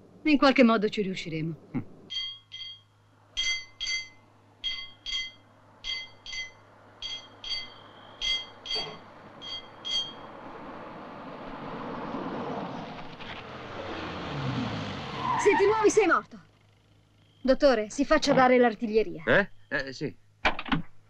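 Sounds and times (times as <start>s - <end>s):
high ringing double tones: 2.1s - 10.4s
approaching vehicle rumble: 5.5s - 17.4s.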